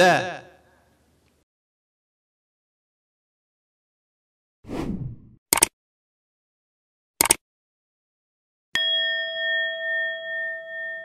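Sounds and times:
notification bell ding: 0:08.8 - 0:11.0.

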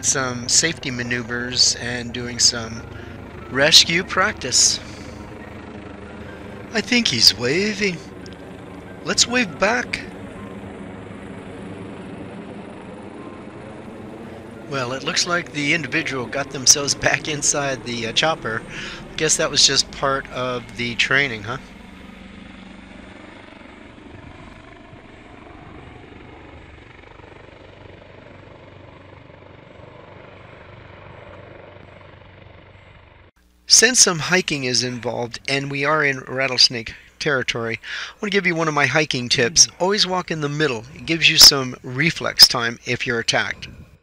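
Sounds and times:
helicopter passing overhead: 0:00.0 - 0:44.0.

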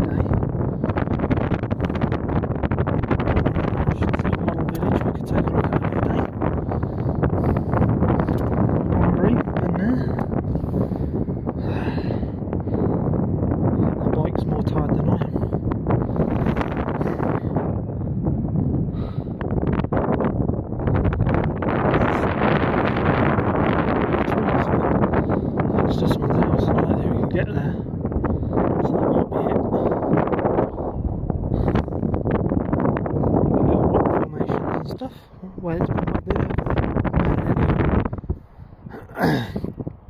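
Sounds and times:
wind buffeting microphone: 0:00.0 - 0:40.0.

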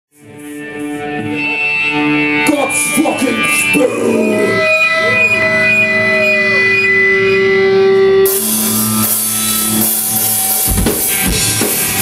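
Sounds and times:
electric guitars sustained notes: 0:00.2 - 0:12.0.

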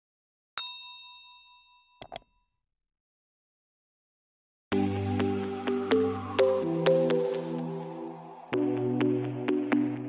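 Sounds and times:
bell-like ding: 0:00.6 - 0:02.3.

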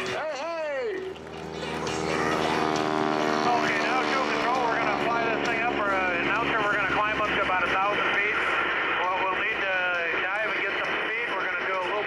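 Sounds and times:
propeller plane engine drone: 0:00.0 - 0:12.0.

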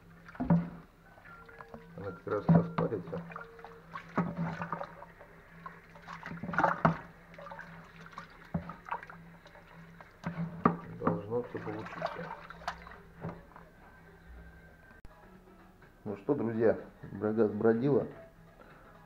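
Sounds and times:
paddle sloshing rice in water: 0:02.4 - 0:13.0.

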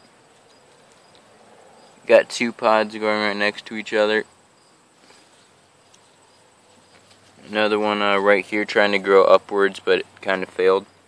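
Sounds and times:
insects trilling: 0:00.0 - 0:11.0
outdoor background hiss: 0:00.0 - 0:11.0.

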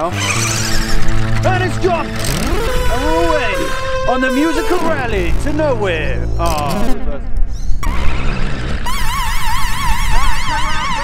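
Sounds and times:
warbling synthesizer tone: 0:00.0 - 0:11.0.

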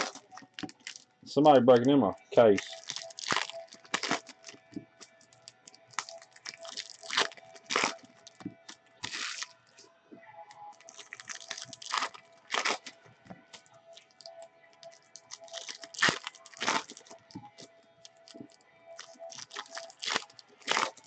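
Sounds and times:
wrapper tearing and crinkling: 0:00.0 - 0:01.0, 0:02.6 - 0:04.6, 0:05.9 - 0:08.4, 0:09.0 - 0:09.5, 0:10.8 - 0:13.0, 0:14.0 - 0:17.2, 0:19.0 - 0:21.0
faint background music: 0:00.0 - 0:21.0.

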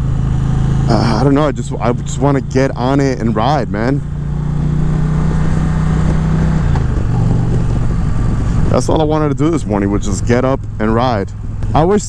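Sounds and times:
motorcycle engine cruising: 0:00.0 - 0:12.0
wind and road rush: 0:00.0 - 0:12.0.

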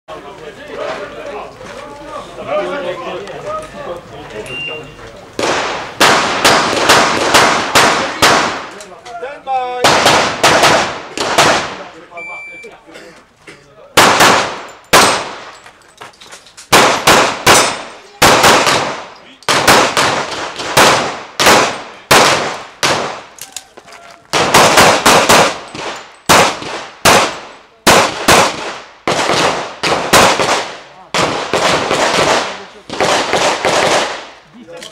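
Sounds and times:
pistol shots: 0:05.4 - 0:08.8, 0:09.8 - 0:11.9, 0:14.0 - 0:15.5, 0:16.7 - 0:23.3, 0:24.3 - 0:34.4.

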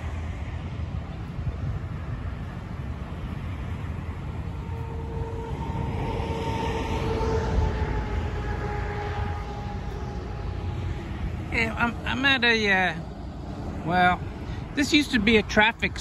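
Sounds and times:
passing vehicle whine: 0:00.0 - 0:16.0
road traffic passing: 0:00.0 - 0:16.0
wind rumble on microphone: 0:00.0 - 0:16.0.

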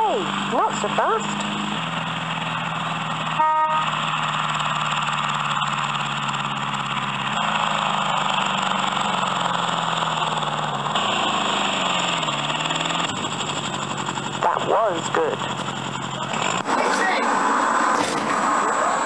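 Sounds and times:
recorded engine drone: 0:00.0 - 0:19.0
short horn toot: 0:03.4 - 0:03.9.

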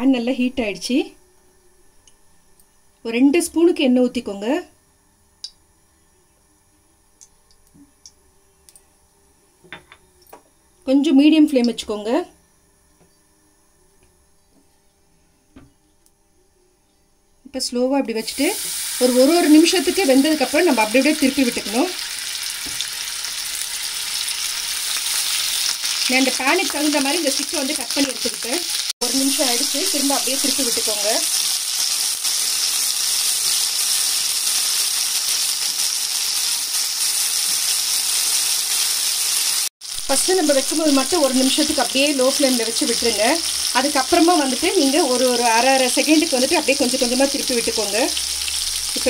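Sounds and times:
food sizzling in oil: 0:18.2 - 0:49.0.

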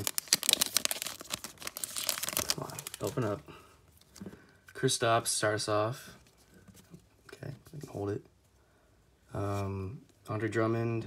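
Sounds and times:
foil wrapper crinkling and tearing: 0:00.0 - 0:03.4.

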